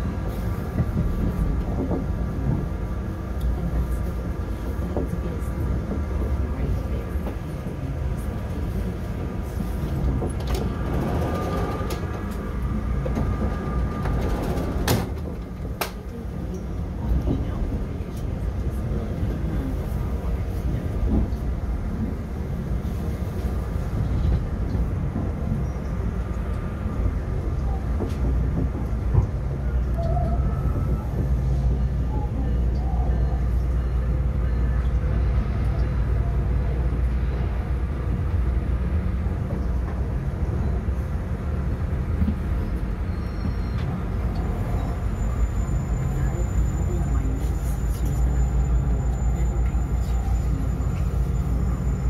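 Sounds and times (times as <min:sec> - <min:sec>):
train wheels rumbling on rails: 0:00.0 - 0:52.0.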